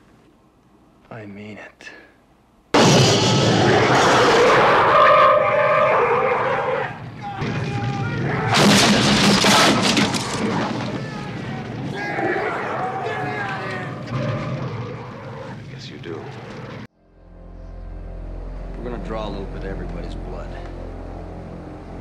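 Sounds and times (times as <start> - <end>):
loud blast of flame: 2.8 - 5.2
flamethrower fire roaring: 2.8 - 16.9
high wailing cries: 3.6 - 8.8, 10.2 - 15.6.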